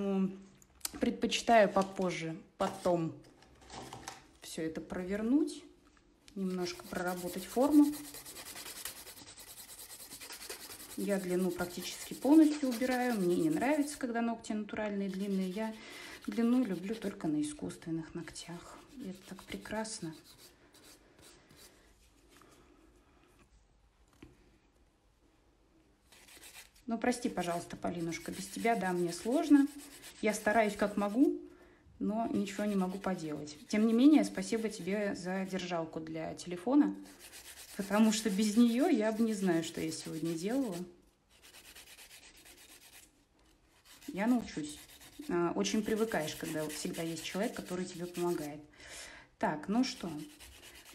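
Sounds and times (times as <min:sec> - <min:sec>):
nail file rubbing: 0:06.6 - 0:14.0, 0:15.1 - 0:17.2, 0:18.8 - 0:21.7, 0:26.1 - 0:31.1, 0:37.0 - 0:43.1, 0:43.7 - 0:48.5, 0:49.8 - 0:50.9.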